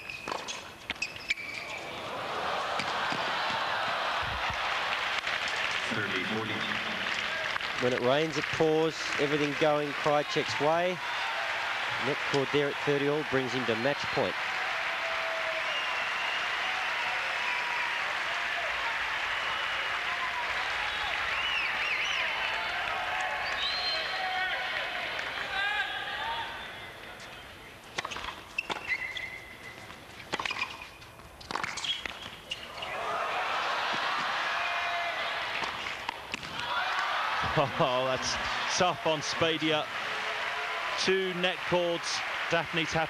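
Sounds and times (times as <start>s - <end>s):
crowd shouting and whistling: 1.2s - 7.8s, 9.7s - 27.0s, 32.5s - 43.0s
crowd cheering and applauding: 1.9s - 26.4s, 32.9s - 43.0s.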